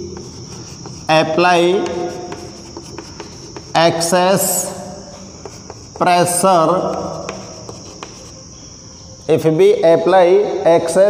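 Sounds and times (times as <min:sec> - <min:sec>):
chalk tapping on blackboard: 0:00.0 - 0:08.4.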